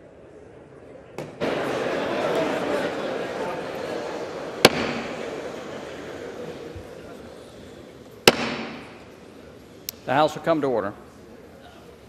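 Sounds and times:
gavel striking: 4.6 - 5.2, 8.3 - 9.0.

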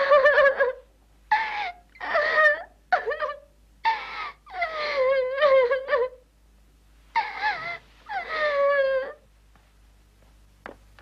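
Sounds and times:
small animal whimpering: 0.0 - 6.2, 7.2 - 9.2.

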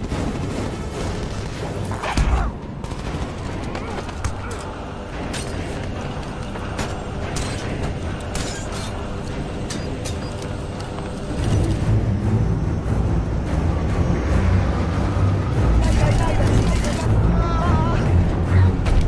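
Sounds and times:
aircraft drone: 0.0 - 18.9
film music: 0.0 - 19.0.

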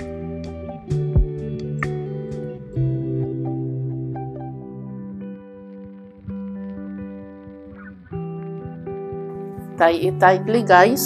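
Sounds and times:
plucked guitar piece: 0.0 - 11.0.

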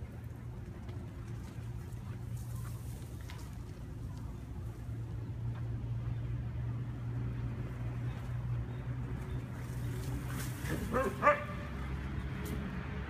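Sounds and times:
dog barking: 10.9 - 11.7.

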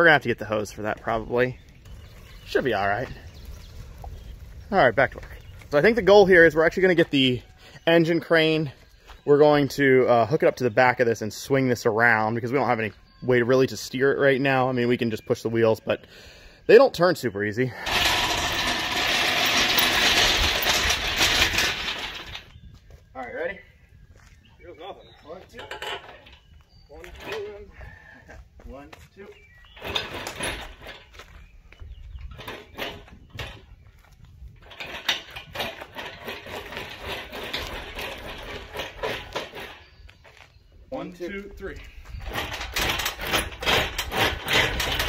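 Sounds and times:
steel casters rattling over asphalt: 0.2 - 8.8, 17.7 - 22.6, 25.3 - 28.0, 29.6 - 40.4, 41.0 - 45.0.

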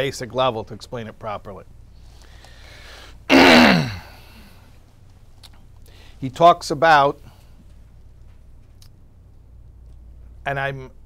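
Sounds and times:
man sighing groan: 3.3 - 4.5.

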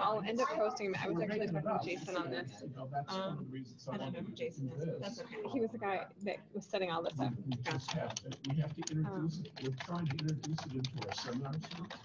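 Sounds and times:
low voices talking: 0.0 - 12.0.

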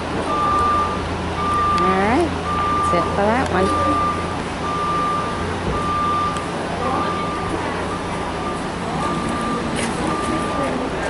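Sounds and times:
people talking: 0.1 - 11.0
vehicle backup alarm beeping: 0.1 - 11.0.

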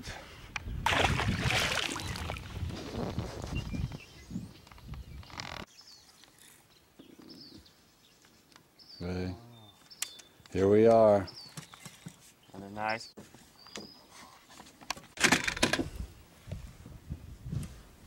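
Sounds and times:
faint bird chirps: 3.5 - 10.4.

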